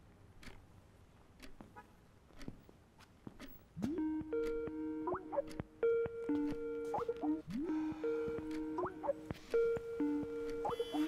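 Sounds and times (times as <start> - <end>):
faint ticks and knocks: 0.4 - 11.0
phone ringtone melody: 4.0 - 11.0.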